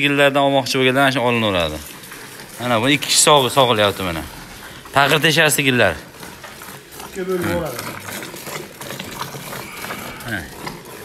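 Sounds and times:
milk squirting into metal pail: 0.0 - 11.0.

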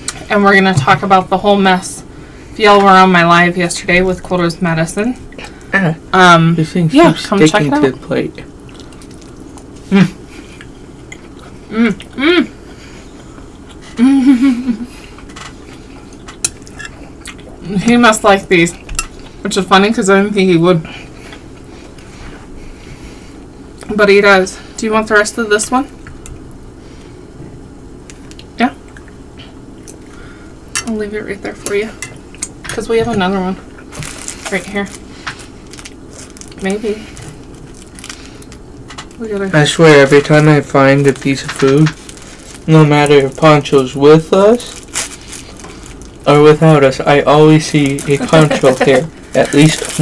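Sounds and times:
plastic wrapper crinkling: 33.9 - 38.6, 39.9 - 50.0.

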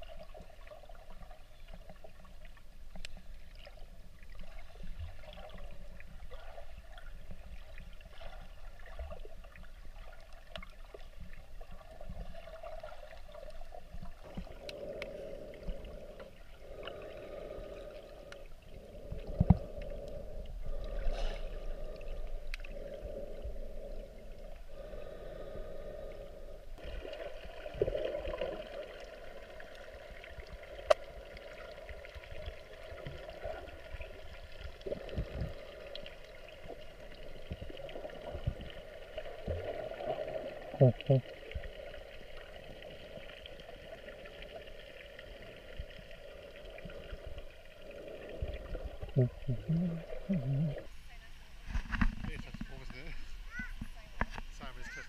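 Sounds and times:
water sloshing and gurgling underwater: 0.0 - 55.0.

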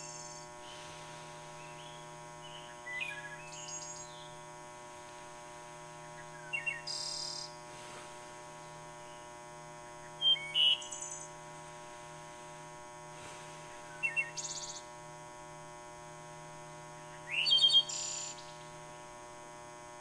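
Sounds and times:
small birds chirping: 0.0 - 15.0, 16.6 - 18.8
steady electrical hum: 0.0 - 20.0.

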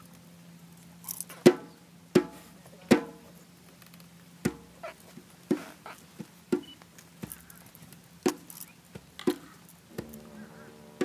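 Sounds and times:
sharp knocks: 9.2 - 11.0.

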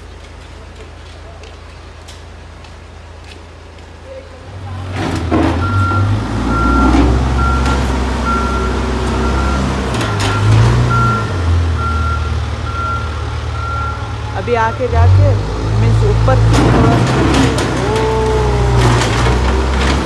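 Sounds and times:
diesel engine running: 0.0 - 20.0
reversing alarm beeping: 5.6 - 15.5.

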